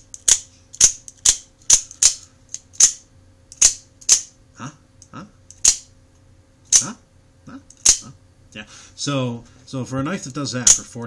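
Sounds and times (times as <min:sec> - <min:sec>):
knife blade snapping: 0:00.1 - 0:04.3, 0:05.5 - 0:05.9, 0:07.7 - 0:08.1.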